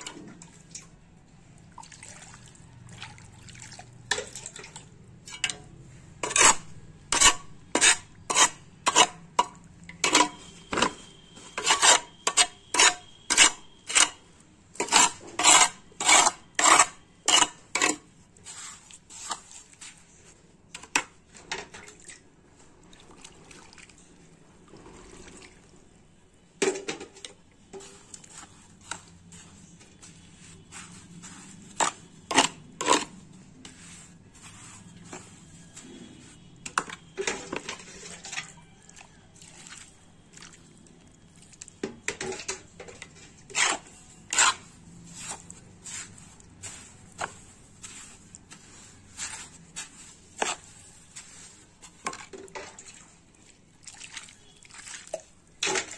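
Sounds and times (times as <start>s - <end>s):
plastic scoop scraping wet mortar: 6.2s - 21.8s, 27.0s - 40.8s, 41.5s - 55.9s.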